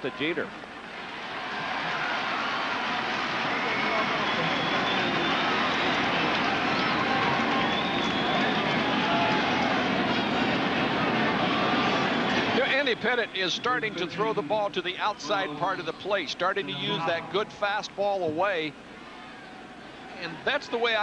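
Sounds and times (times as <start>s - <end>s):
crowd murmur: 3.3s - 14.5s.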